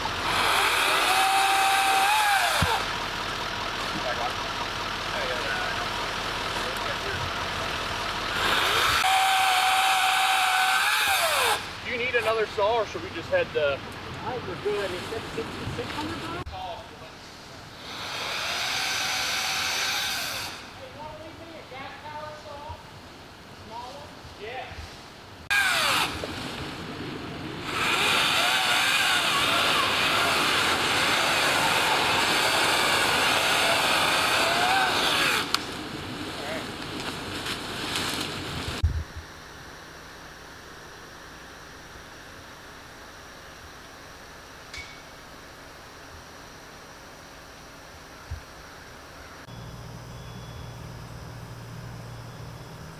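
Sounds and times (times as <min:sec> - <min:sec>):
chainsaw cutting wood: 0:00.1 - 0:02.9, 0:08.3 - 0:11.7, 0:17.8 - 0:20.7, 0:25.5 - 0:26.4, 0:27.6 - 0:35.8.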